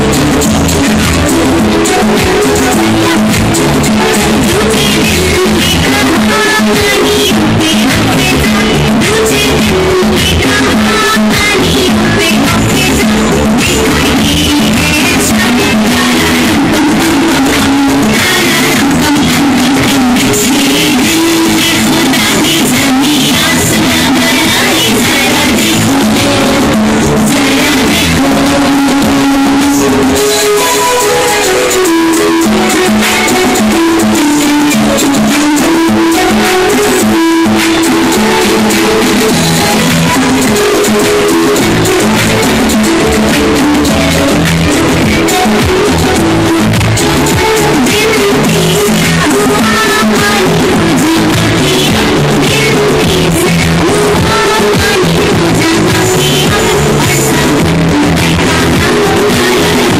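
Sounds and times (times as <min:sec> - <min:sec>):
loud music with drums: 0:00.0 - 0:59.9.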